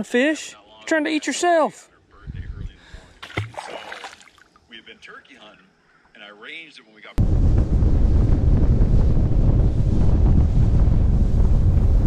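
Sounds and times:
low rumble: 0:02.3 - 0:02.8, 0:07.2 - 0:12.0
fish splashing into water: 0:03.2 - 0:04.5.

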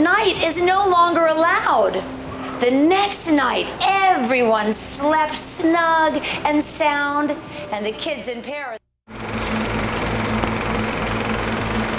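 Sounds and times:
film projector whirring clatter: 0:09.1 - 0:11.9.

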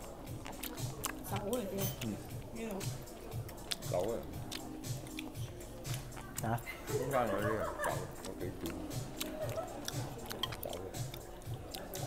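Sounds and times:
person chewing food: 0:00.0 - 0:12.0
cutlery clicking on plate: 0:01.8 - 0:02.1.

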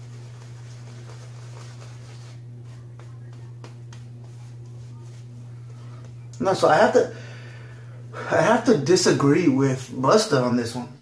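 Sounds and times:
shaving brush strokes: 0:00.0 - 0:07.1
steady low hum: 0:00.0 - 0:11.0.

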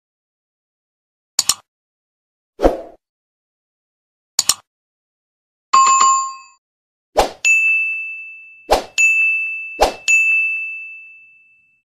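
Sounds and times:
notification bell ding: 0:05.8 - 0:06.6, 0:07.5 - 0:11.8.

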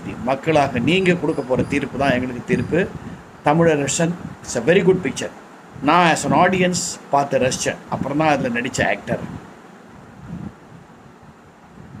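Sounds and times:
microphone noise: 0:00.0 - 0:05.2, 0:05.8 - 0:06.8.

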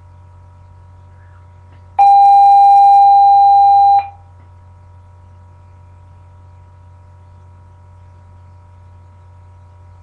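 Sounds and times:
electronic school bell beep: 0:02.0 - 0:04.2.

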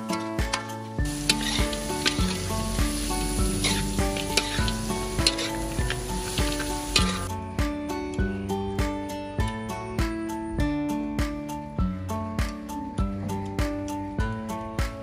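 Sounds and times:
metal spatula scraping pan: 0:00.0 - 0:02.5, 0:03.4 - 0:07.3
background music: 0:00.0 - 0:15.0
food sizzling in wok: 0:00.1 - 0:07.3.

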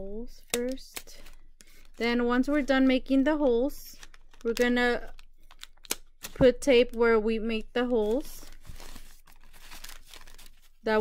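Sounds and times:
paper bag rustling: 0:07.8 - 0:11.0.

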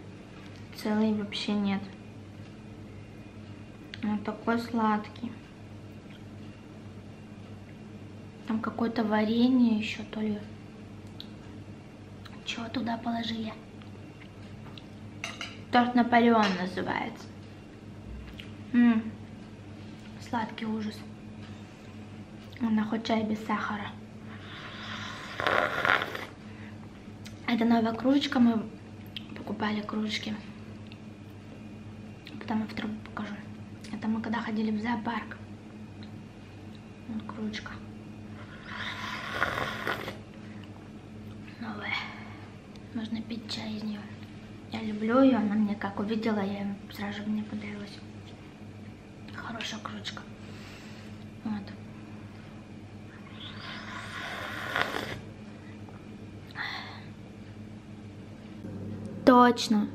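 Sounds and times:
person slurping tea: 0:24.8 - 0:26.4, 0:38.6 - 0:40.2, 0:53.5 - 0:55.2.

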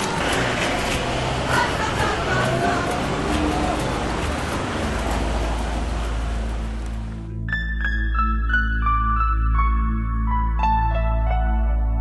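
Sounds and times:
outdoor city ambience: 0:00.0 - 0:12.0.

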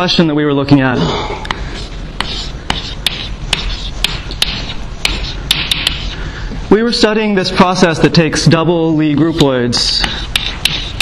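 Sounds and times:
chalk tapping on blackboard: 0:01.5 - 0:06.2, 0:09.2 - 0:11.0
chalk scratching on blackboard: 0:01.5 - 0:06.3, 0:09.1 - 0:11.0.

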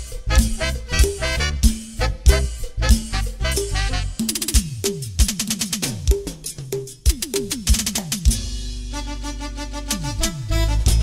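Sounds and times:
strong low beats: 0:00.0 - 0:04.2
drum strokes with falling pitch: 0:00.0 - 0:08.9.

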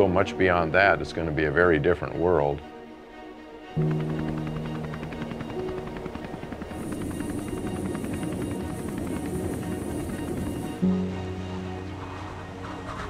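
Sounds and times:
music: 0:00.0 - 0:13.0
helicopter rotor beating: 0:03.8 - 0:10.9
high turbine whine: 0:03.8 - 0:13.0.

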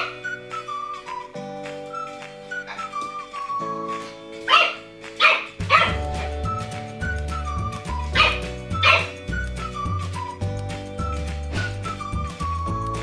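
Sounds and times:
background music with bass beat: 0:05.0 - 0:13.0.

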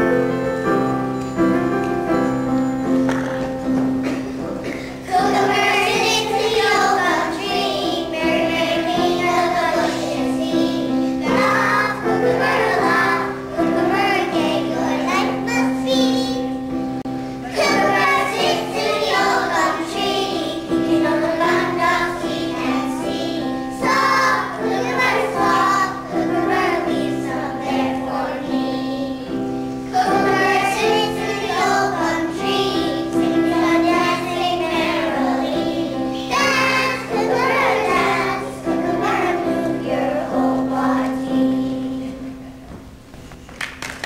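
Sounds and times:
instrumental accompaniment: 0:00.0 - 0:43.2
children singing in unison: 0:04.0 - 0:16.6, 0:17.4 - 0:42.4.

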